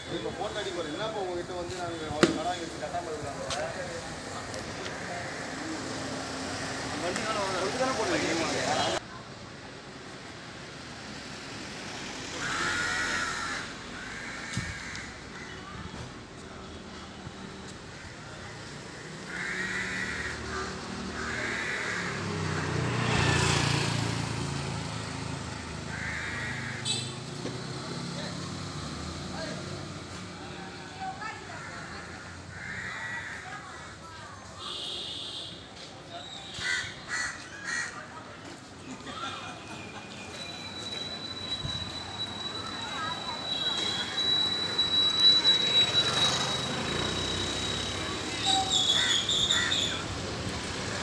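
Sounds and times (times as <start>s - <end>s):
street noise: 0.0s - 51.0s
crow cawing: 12.3s - 15.7s, 19.2s - 22.8s, 25.8s - 27.0s, 31.5s - 33.9s, 36.6s - 38.0s, 48.7s - 50.0s
vehicle engine passing: 20.0s - 26.0s
distant voices: 35.9s - 51.0s.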